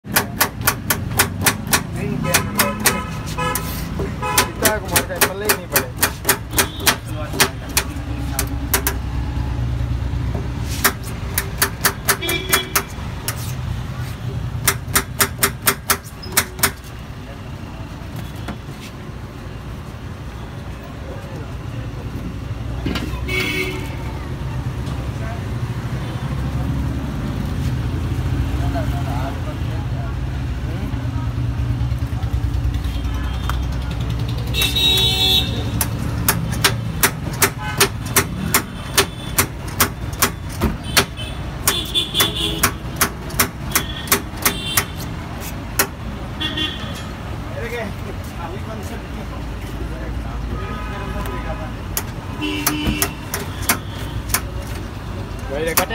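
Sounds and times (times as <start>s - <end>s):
road traffic rumble: 0.0s - 55.9s
vehicle horn honks: 2.2s - 4.8s, 12.2s - 12.9s, 23.1s - 24.1s, 34.5s - 35.8s, 40.8s - 42.8s, 52.4s - 54.3s
knife chopping on steel counter: 4.4s - 9.0s.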